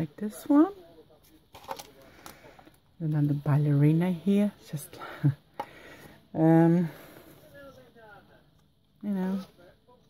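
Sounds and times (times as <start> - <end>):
paper embellishments clicking and rustling: 1.5 - 2.4.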